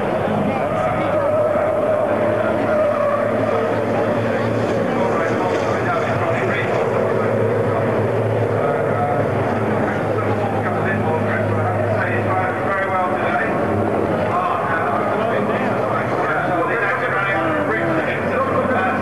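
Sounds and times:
racing truck diesel engines: 0.0s - 19.0s
voices: 0.0s - 19.0s.

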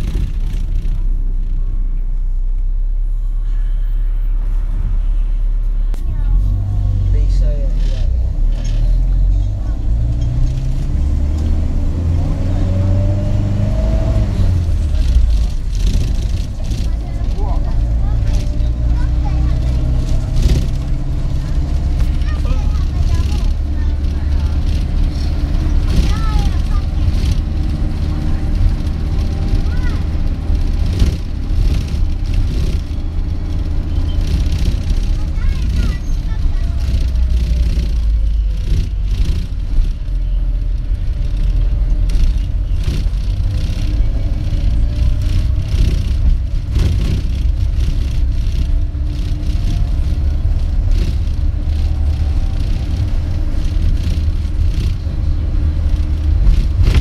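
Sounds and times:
rattles: 0.0s - 1.7s, 7.7s - 57.0s
bus engine and road rumble: 0.0s - 57.0s.

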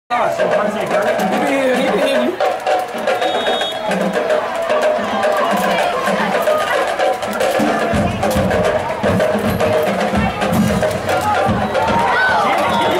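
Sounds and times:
crowd voices: 0.1s - 12.9s
drums and percussion beat: 0.1s - 12.9s.

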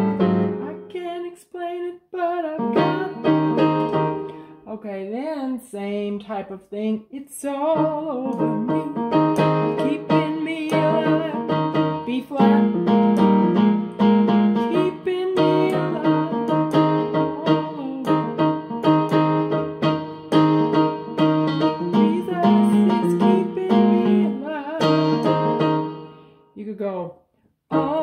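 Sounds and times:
keyboard piano chords: 0.0s - 1.3s, 2.2s - 4.7s, 7.6s - 26.5s, 27.7s - 28.0s.

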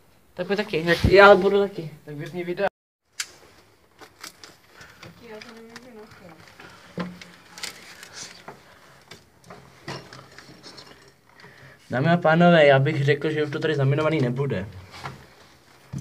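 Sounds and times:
clothing rustle: 3.3s - 12.0s, 14.8s - 16.0s
knocks and scrapes: 6.3s - 11.3s.

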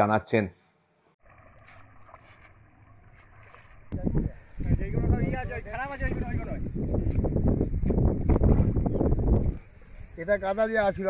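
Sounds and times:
water sloshing and splashing: 1.2s - 4.0s, 7.0s - 9.6s.

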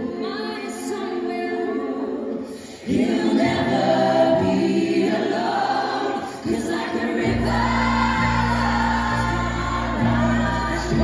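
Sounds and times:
vocal group singing in harmony: 0.0s - 11.0s.

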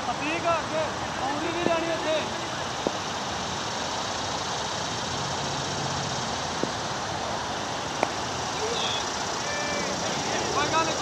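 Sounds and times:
steady background hiss: 0.0s - 11.0s
distant shouted calls: 7.5s - 11.0s.

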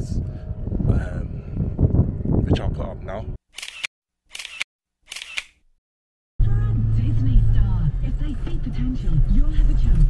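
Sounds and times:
camera shutter click: 3.6s - 5.6s
low vehicle engine hum: 6.4s - 10.0s.

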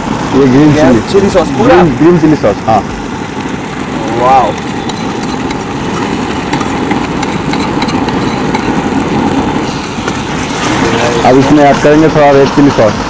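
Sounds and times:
gas burner roaring: 0.0s - 13.0s
faint crackling from pan: 2.9s - 11.8s.

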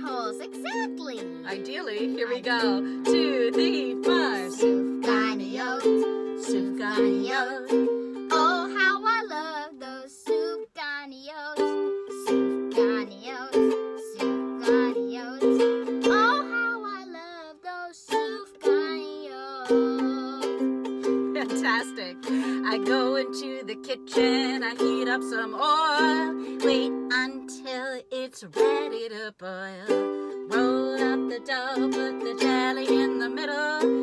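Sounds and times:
person counting in: 0.0s - 1.5s
ukulele strumming chords: 0.0s - 10.8s, 11.4s - 34.0s.

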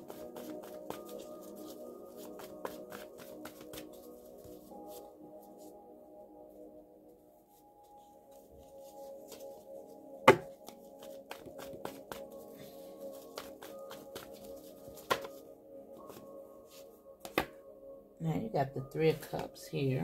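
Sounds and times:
soft ambient music: 0.0s - 20.0s
cards shuffling and snapping: 10.3s - 12.4s, 13.1s - 15.4s.

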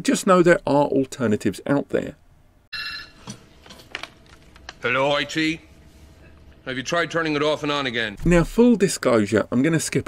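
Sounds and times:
telephone ringing: 2.7s - 3.4s.

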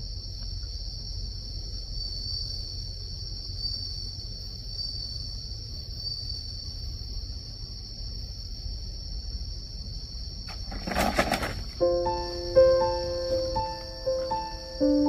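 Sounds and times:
insects chirring: 0.0s - 15.0s.

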